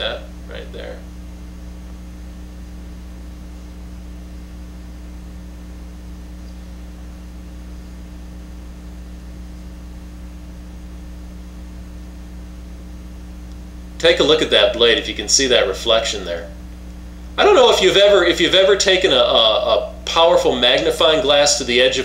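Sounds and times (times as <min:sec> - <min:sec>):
constant hiss: 0:00.0 - 0:22.0
electrical mains hum: 0:00.0 - 0:22.0.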